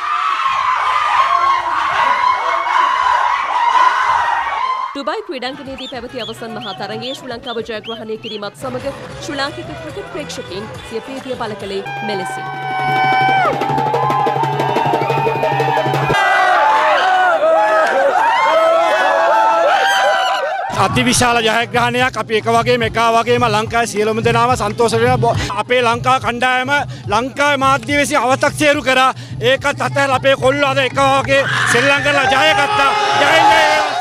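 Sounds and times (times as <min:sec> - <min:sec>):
young men screaming and cheering: 0:00.0 - 0:07.7, 0:11.8 - 0:21.2, 0:31.2 - 0:34.0
hand drum beating fast rhythm: 0:12.6 - 0:16.2.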